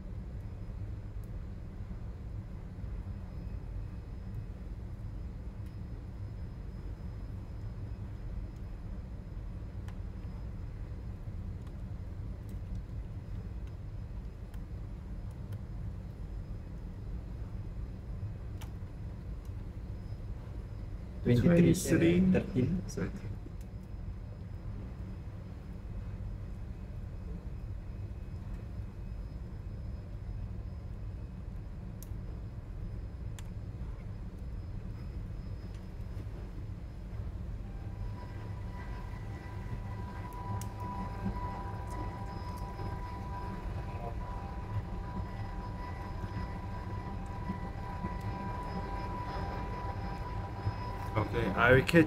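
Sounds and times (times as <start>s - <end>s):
ship machinery rumble: 37.1s - 52.0s
high-pitched tone: 37.7s - 52.0s.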